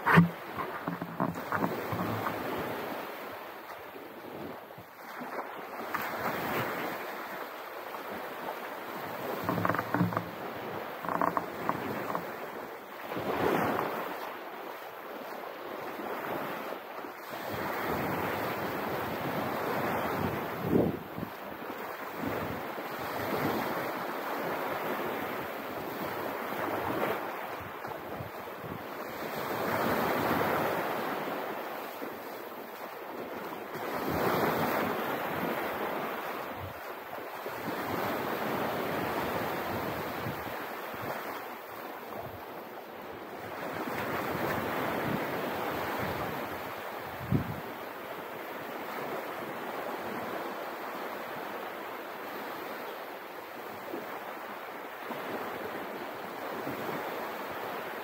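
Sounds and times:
small waves washing on sand: 0.0 - 58.0.

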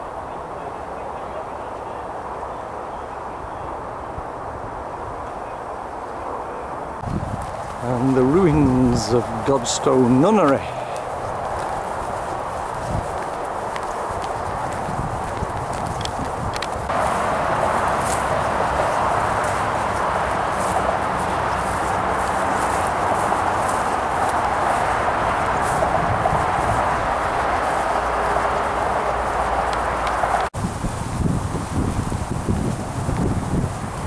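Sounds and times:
wind buffeting microphone: 3.3 - 34.0
footsteps on earth path: 7.0 - 33.9.

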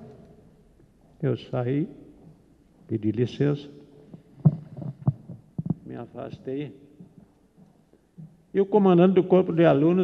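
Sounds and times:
man talking: 1.2 - 2.0, 2.9 - 3.8, 5.8 - 6.8, 8.6 - 10.0
microphone thumps: 4.1 - 7.2.

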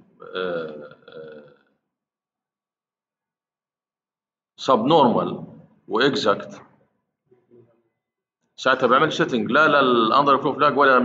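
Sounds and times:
man making hesitation sounds: 0.0 - 1.4.

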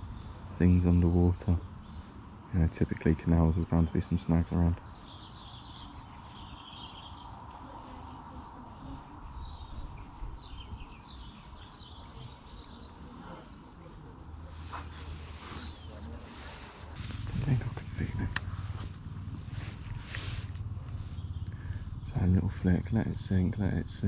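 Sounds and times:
birds chirping: 0.0 - 24.0
low outdoor rumble: 0.0 - 24.0.

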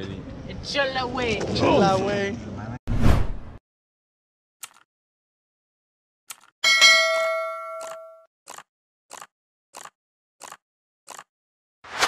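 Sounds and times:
short whooshes: 2.9 - 3.6
bright bell ding: 6.6 - 8.3.

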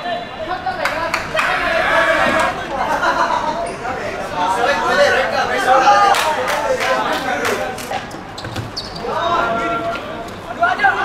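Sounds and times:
players calling out: 0.0 - 11.0.

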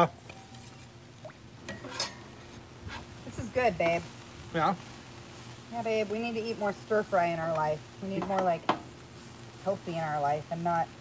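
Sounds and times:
faint sizzle: 0.0 - 11.0
metal spatula scraping griddle: 1.7 - 2.3.

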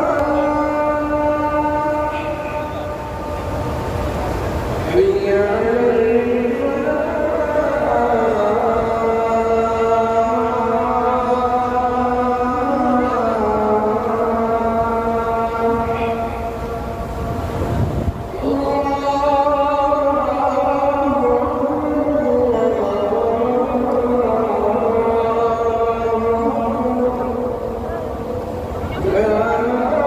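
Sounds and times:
call to prayer over loudspeakers: 0.0 - 30.0
crowd noise: 0.0 - 30.0
wind: 0.0 - 30.0.

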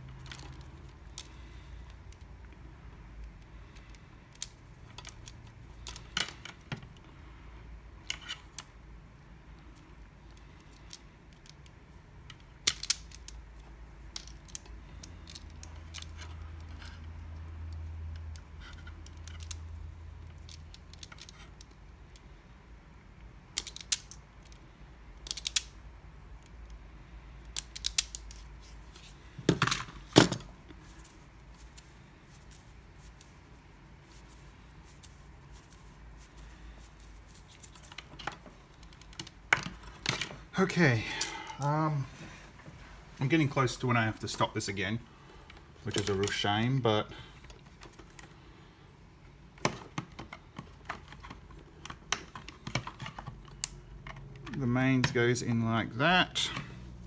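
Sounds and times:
plastic parts snapping: 25.2 - 25.7, 27.4 - 28.5.

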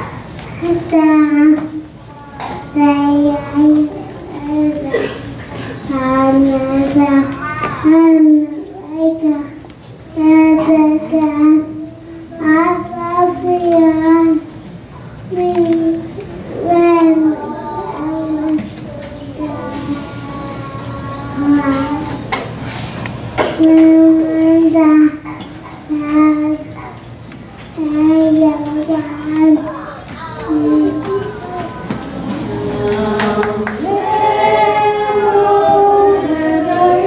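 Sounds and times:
girl singing: 16.6 - 22.2, 30.4 - 37.0.

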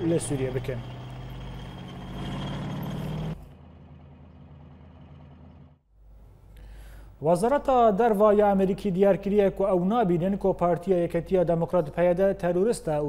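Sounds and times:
tracked vehicle engine droning: 0.0 - 5.8.

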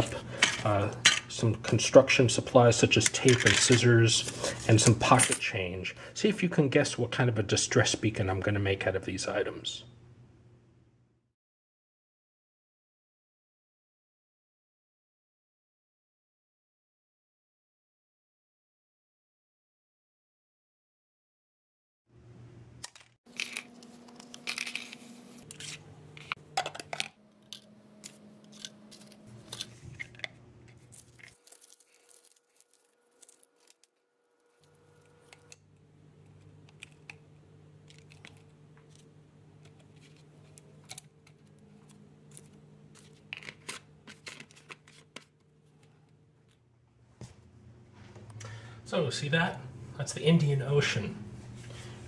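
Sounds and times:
low room hum: 0.0 - 11.3, 22.1 - 52.0
tape tearing: 22.8 - 26.4, 27.4 - 30.2, 30.8 - 35.6.

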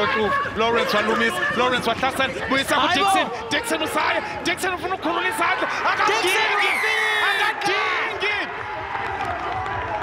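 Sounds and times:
male commentator calling play: 0.0 - 8.5
stadium crowd noise: 0.0 - 10.0.

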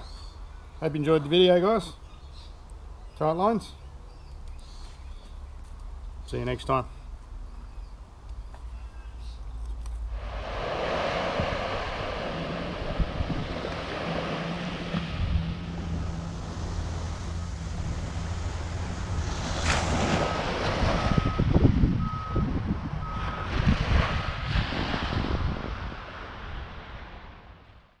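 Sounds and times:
surf breaking on beach: 10.1 - 21.5, 23.2 - 27.6
wind buffeting microphone: 10.2 - 19.2, 19.9 - 27.3
reversing alarm beeps: 21.1 - 23.5.

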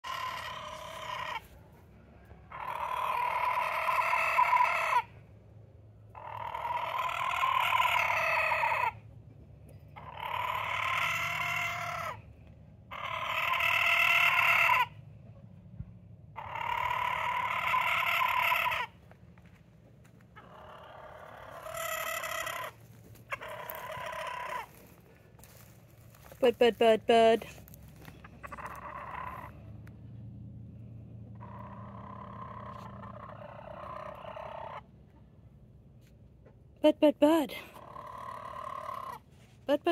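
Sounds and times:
roosters crowing: 0.0 - 5.2, 6.1 - 9.0, 10.0 - 12.3, 12.9 - 15.0, 16.4 - 19.1, 20.4 - 26.4, 27.8 - 29.7, 31.4 - 34.9, 37.8 - 39.2.

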